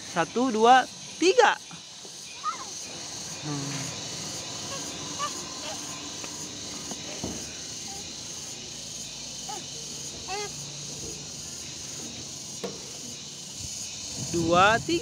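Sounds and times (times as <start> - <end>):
high insect drone: 0.0 - 15.0
child murmuring: 2.4 - 2.8, 3.4 - 6.0, 9.4 - 10.6.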